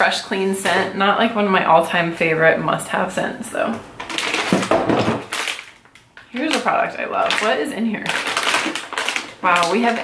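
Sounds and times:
plastic bottles rustling and clattering: 4.0s - 10.0s.

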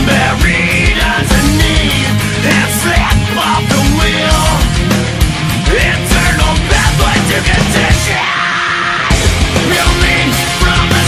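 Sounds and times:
pounding drum beat: 0.0s - 8.3s, 9.1s - 11.0s
heavy rock music: 0.0s - 11.0s.

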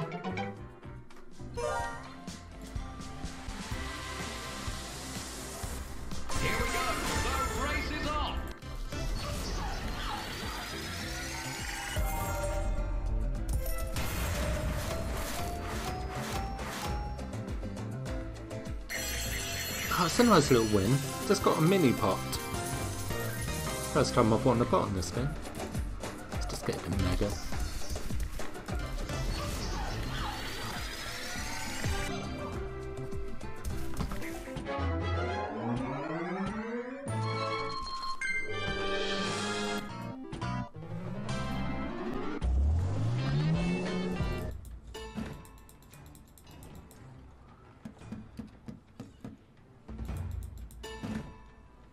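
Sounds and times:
looping game music: 0.0s - 5.0s, 10.7s - 29.6s, 31.0s - 46.8s.

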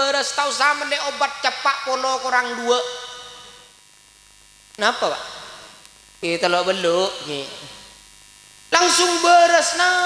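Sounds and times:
man speaking with echo: 0.0s - 3.7s, 4.8s - 7.9s, 8.7s - 10.0s
sound system electrical hum: 0.0s - 10.0s.

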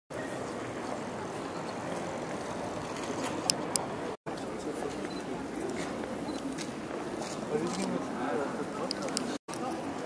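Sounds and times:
street noise: 0.1s - 10.0s.

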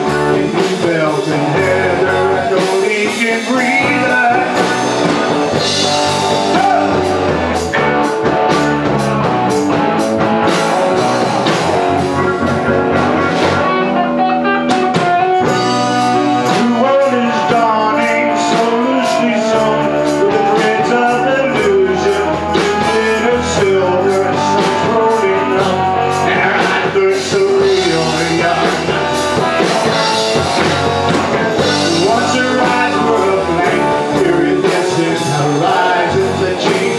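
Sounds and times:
live rock band playing: 0.0s - 36.9s.

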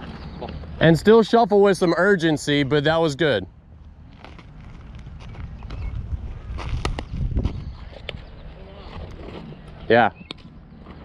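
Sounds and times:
wind on microphone: 5.1s - 9.3s.

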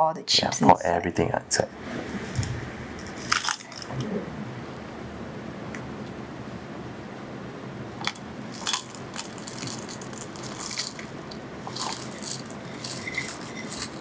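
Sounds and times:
hard chips pouring into plastic cup: 8.6s - 14.0s.

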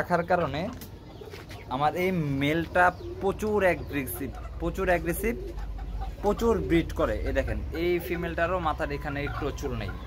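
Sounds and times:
birds calling: 0.0s - 10.0s.

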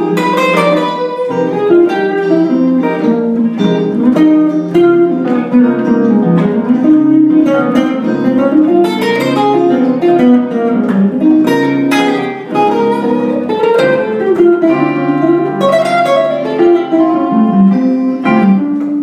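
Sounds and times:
electric guitar lead line: 0.0s - 19.0s.

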